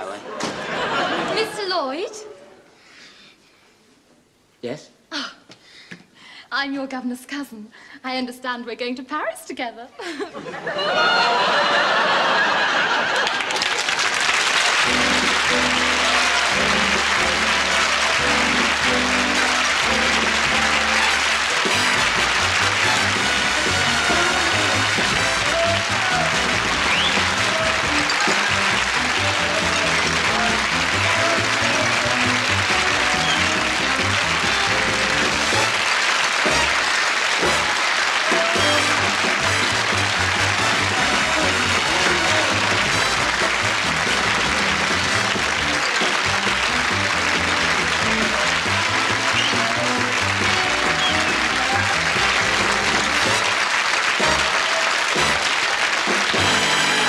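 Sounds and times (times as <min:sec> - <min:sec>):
studio audience applause: 0:00.0 - 0:01.8, 0:10.5 - 0:57.0
comedy show theme music: 0:10.5 - 0:57.0.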